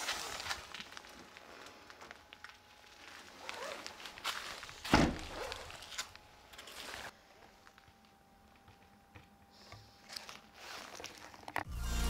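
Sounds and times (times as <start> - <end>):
footsteps on gravel: 0.0 - 7.2
car tailgate shutting with thud: 4.9 - 5.3.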